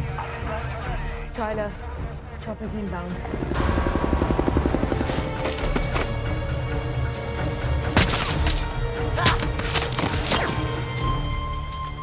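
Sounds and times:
tense film music score: 0.0s - 12.0s
sharp cracks and hits: 7.8s - 10.5s.

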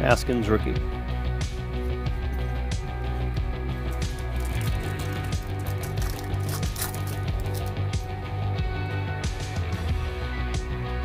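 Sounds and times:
background music with bass line: 0.0s - 11.0s
foil wrapper crinkling and tearing: 4.0s - 7.7s.

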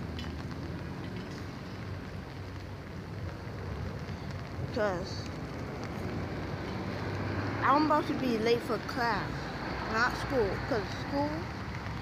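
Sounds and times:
rain hissing on umbrella: 0.0s - 12.0s.

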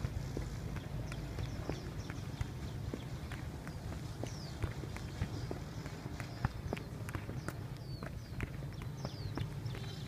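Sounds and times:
boots tapping football: 0.0s - 10.0s
quick steps on artificial turf: 0.0s - 10.0s
steady low rumble: 0.0s - 10.0s.

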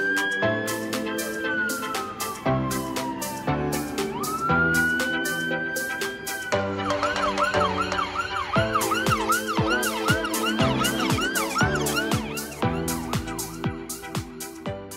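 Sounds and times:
emergency vehicle siren: 0.0s - 14.0s
music with steady beat: 0.0s - 14.9s.

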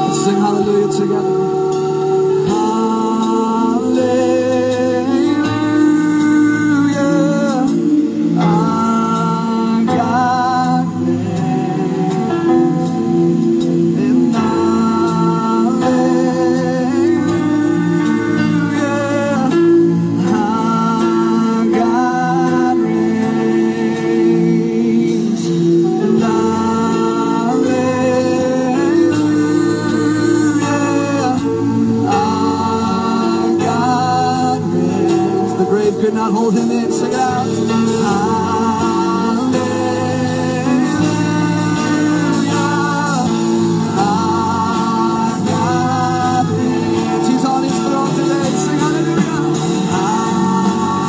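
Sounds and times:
congregation singing: 0.0s - 51.0s
instrumental accompaniment: 0.0s - 51.0s.

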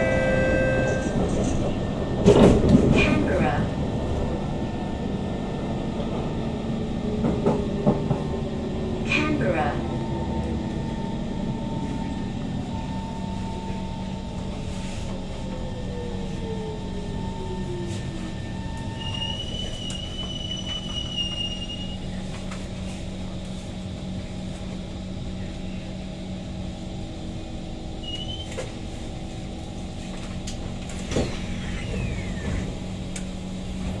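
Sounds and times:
train motor whine: 0.0s - 1.7s
train doors knocking and sliding: 0.0s - 3.6s, 7.2s - 8.4s, 30.6s - 34.0s.

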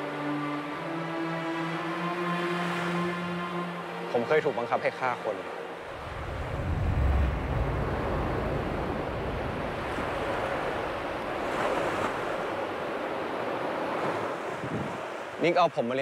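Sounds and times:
surf washing on shore: 4.0s - 16.0s
wind rumbling on microphone: 5.8s - 15.1s.

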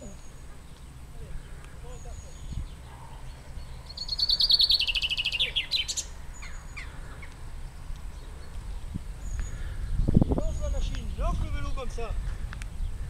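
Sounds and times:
faint bird notes: 0.0s - 11.4s
songbird singing: 0.0s - 13.0s.

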